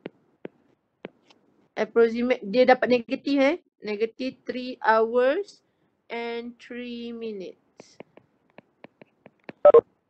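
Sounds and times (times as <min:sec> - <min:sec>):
stylus tapping tablet screen: 0:00.0 - 0:01.4, 0:07.8 - 0:09.8.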